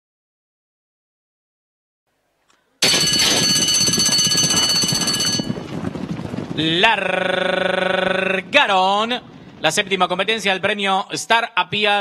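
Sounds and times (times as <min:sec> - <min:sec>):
starting-gate bell ringing: 0:02.8 - 0:05.6
gates clattering: 0:02.8 - 0:05.7
horses' hooves: 0:02.8 - 0:08.5.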